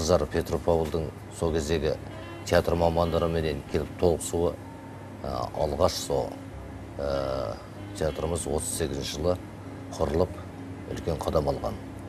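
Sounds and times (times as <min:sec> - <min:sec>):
man speaking: 0:00.0 - 0:04.6, 0:05.2 - 0:11.9
man's drawn-out hesitation sound: 0:00.0 - 0:11.9.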